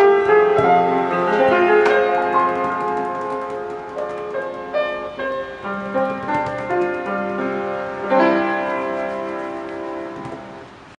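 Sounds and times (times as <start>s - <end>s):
piano chord ringing: 0.0s - 11.0s.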